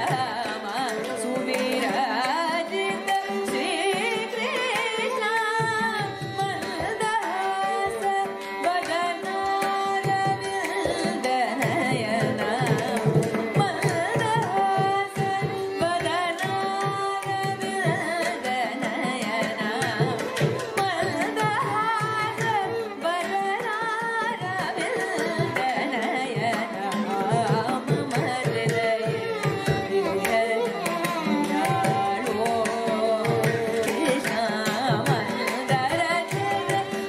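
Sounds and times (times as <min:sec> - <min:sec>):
hand drum and clay pot rhythm: 0:00.0 - 0:37.0
violin: 0:00.0 - 0:37.0
woman singing: 0:00.0 - 0:37.0.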